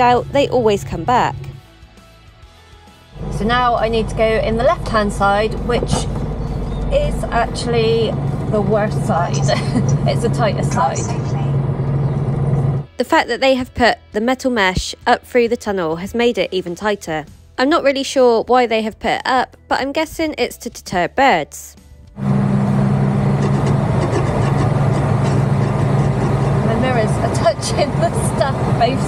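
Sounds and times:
lorry diesel engine hum: 3.1 - 12.9, 22.2 - 29.0.

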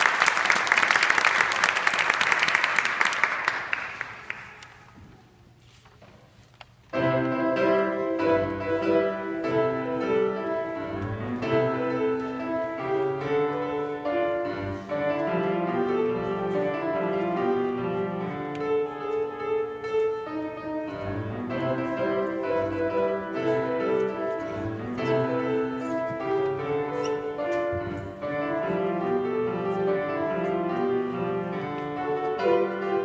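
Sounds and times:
grand piano melody and chords: 6.9 - 33.0.

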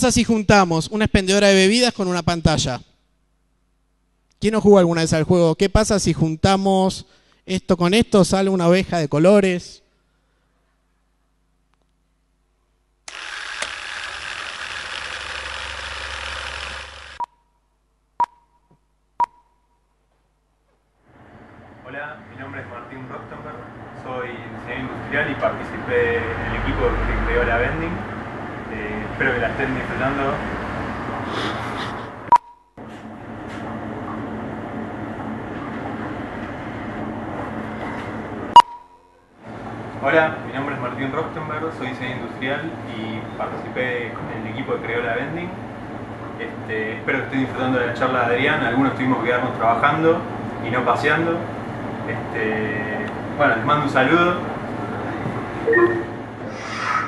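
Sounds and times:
short beeps: 32.3 - 32.8, 38.6 - 39.2, 55.6 - 56.2.

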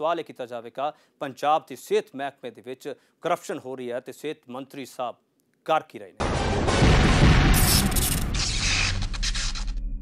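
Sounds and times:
noisy whoosh: 6.2 - 10.0.

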